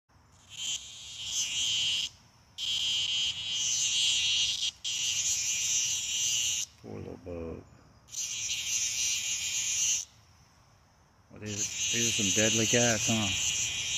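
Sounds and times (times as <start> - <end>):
high-pitched insect buzzing: 0.2 - 6.8, 8.0 - 10.2, 11.4 - 13.9.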